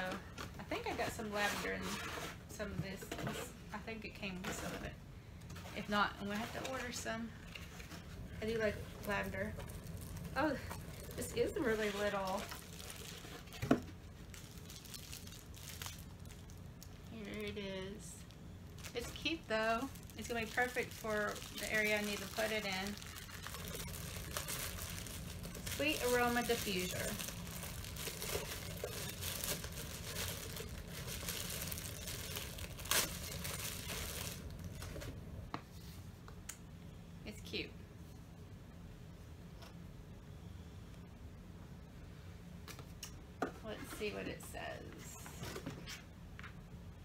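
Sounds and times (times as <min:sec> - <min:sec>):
plastic bag crinkling: 0:05.7 - 0:35.2
cardboard rustling: 0:18.8 - 0:35.2.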